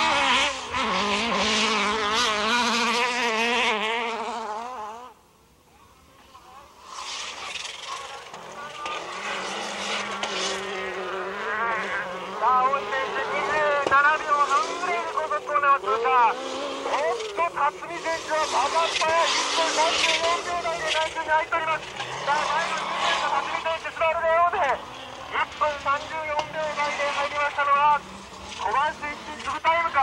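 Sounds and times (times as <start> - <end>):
rally car engine revving: 0.0 - 5.2, 6.7 - 30.0.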